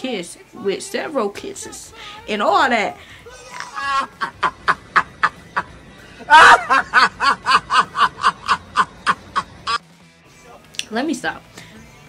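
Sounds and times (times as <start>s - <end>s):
man laughing rapidly: 3.2s - 9.8s.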